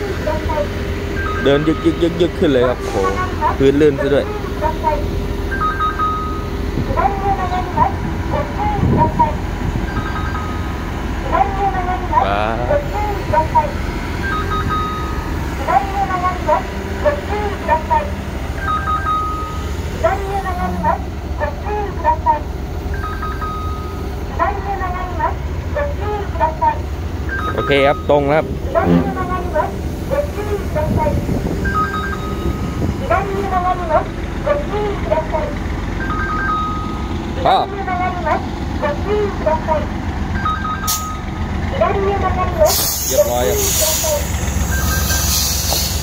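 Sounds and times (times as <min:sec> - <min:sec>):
diesel engine rumbling: 0:00.0 - 0:46.0
electronic beep pattern: 0:09.8 - 0:10.7, 0:14.2 - 0:15.2, 0:27.3 - 0:29.2, 0:31.6 - 0:32.8, 0:44.7 - 0:45.3
person speaking: 0:27.5 - 0:31.2.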